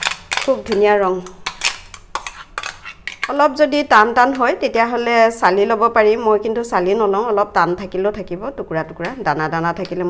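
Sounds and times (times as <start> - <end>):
metal spoon scraping a steel jar: 0.0 - 3.3.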